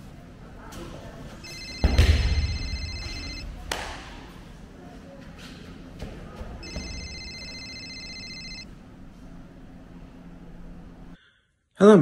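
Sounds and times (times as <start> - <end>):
electronic phone ringtone: 1.4 - 3.5, 6.6 - 8.7.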